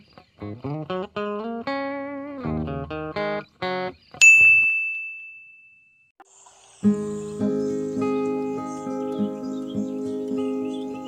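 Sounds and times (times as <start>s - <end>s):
bell ding: 4.2s - 6.1s.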